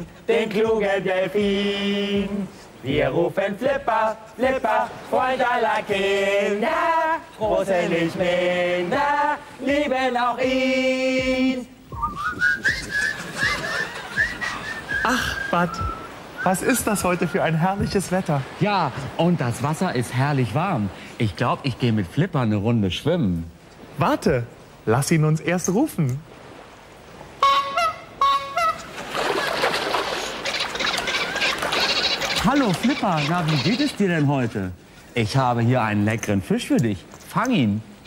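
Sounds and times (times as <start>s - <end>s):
dolphin-like whistles and chirps: 12.0s - 18.0s, 30.4s - 33.7s
short honking calls: 27.4s - 28.9s
dolphin squeaky chattering: 30.4s - 34.0s.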